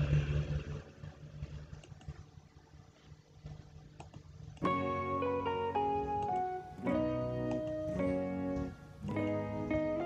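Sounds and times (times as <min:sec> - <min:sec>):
acoustic guitar music: 0:04.6 - 0:10.0.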